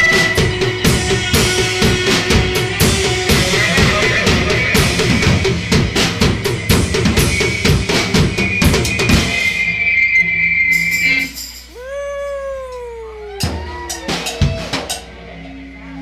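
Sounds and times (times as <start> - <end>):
drum kit played fast: 0.0 - 9.6.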